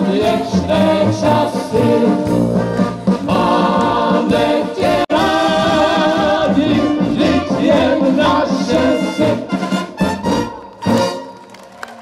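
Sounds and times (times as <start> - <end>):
vocalists singing together: 0.0 - 9.6
brass band playing: 0.0 - 11.6.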